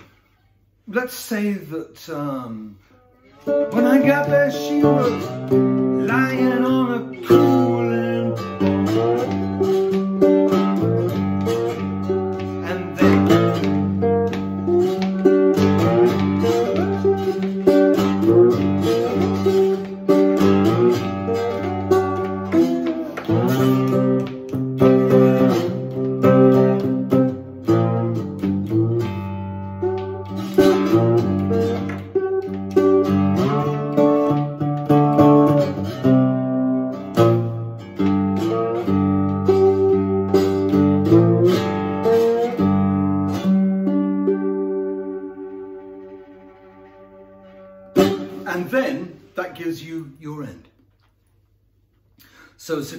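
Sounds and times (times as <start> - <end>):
slide guitar blues riff: 0.9 - 50.4.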